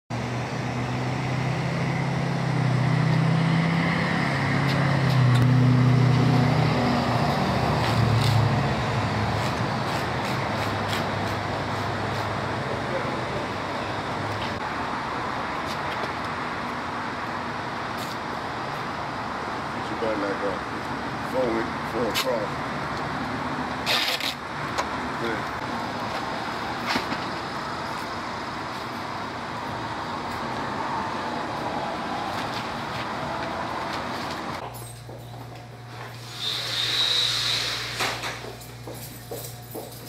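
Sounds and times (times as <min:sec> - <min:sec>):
vehicle engine hum: 0:00.1 - 0:36.3
hiss of passing traffic: 0:00.2 - 0:20.6, 0:35.9 - 0:38.6.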